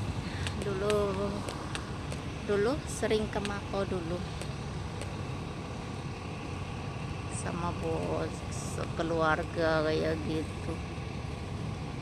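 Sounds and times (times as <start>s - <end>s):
low waterfront rumble: 0.0s - 12.0s.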